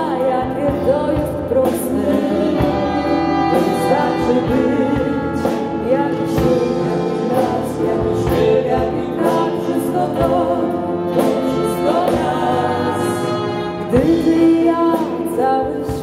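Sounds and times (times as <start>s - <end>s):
live pop band playing: 0.0s - 16.0s
man and woman singing duet: 0.0s - 16.0s
brass instruments: 0.7s - 16.0s
saxophone: 0.8s - 16.0s.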